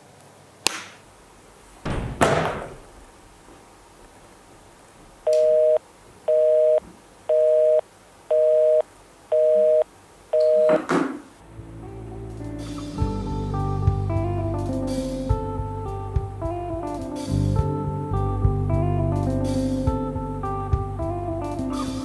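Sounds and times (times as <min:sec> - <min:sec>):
thump: 0:01.8 - 0:03.6
phone call-dropped beeps: 0:05.3 - 0:09.8, 0:10.4 - 0:10.9.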